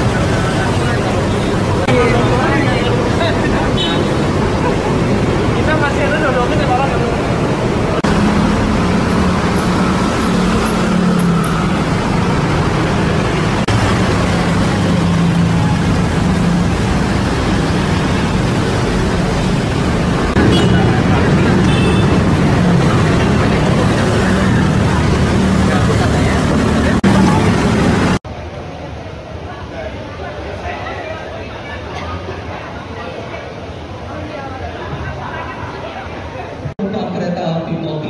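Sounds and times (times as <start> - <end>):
street traffic passing: 0.0 - 38.0.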